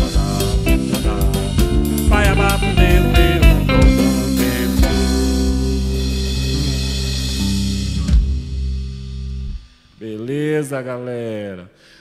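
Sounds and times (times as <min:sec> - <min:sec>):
live band holding a chord: 0:00.0 - 0:09.4
drum and cymbal hit: 0:00.0 - 0:09.7.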